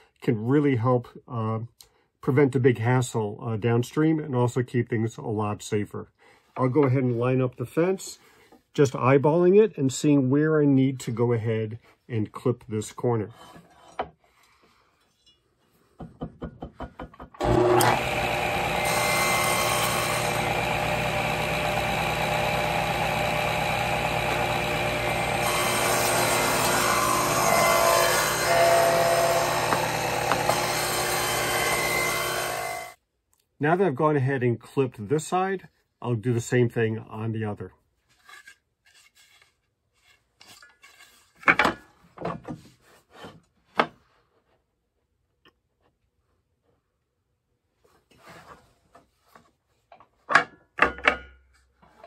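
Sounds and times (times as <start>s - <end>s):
table saw whirring: 17.4s - 33.0s.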